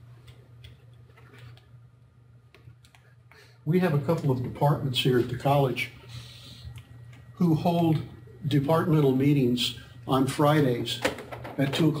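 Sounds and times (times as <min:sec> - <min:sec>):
steady low hum: 0:00.0 - 0:12.0
faint clicks and taps: 0:00.2 - 0:01.7, 0:02.5 - 0:03.4.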